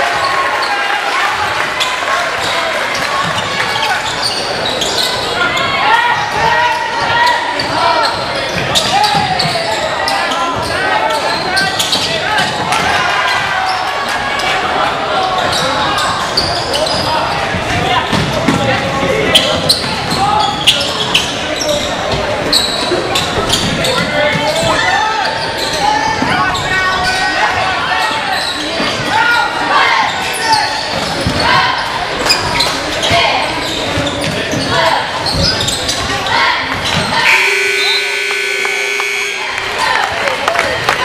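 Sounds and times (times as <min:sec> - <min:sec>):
crowd voices: 0:00.0 - 0:41.0
scoreboard horn: 0:37.2 - 0:39.9.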